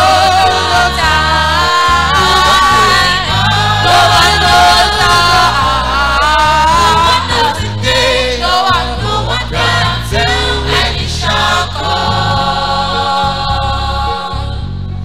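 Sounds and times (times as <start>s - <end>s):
low bass accompaniment: 0.0s - 15.0s
youth choir singing gospel: 0.0s - 15.0s.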